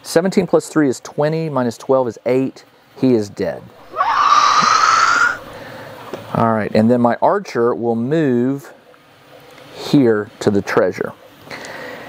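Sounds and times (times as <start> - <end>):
shrill hissing screech: 3.8 - 5.6.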